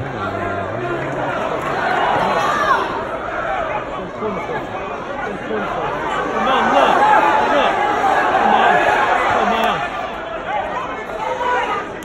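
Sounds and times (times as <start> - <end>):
crowd talking and calling out: 0.0 - 12.0.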